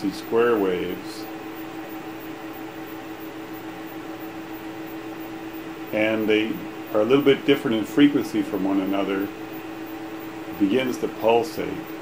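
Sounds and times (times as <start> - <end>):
plasma tube buzzing: 0.0 - 12.0.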